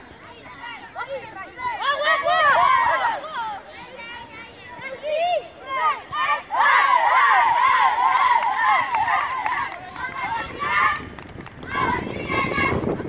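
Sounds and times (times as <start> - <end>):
young children shouting: 0.6 - 11.0.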